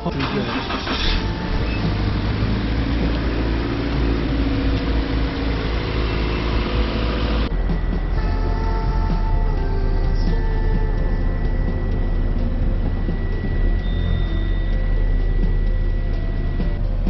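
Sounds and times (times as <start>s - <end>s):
car engine running: 0.0s - 17.0s.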